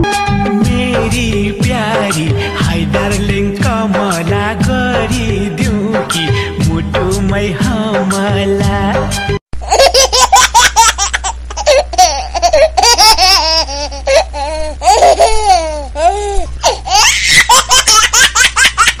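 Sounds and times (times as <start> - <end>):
steady low hum: 0.4 - 8.9, 9.6 - 19.0
person laughing loudly: 9.6 - 15.7, 16.3 - 19.0.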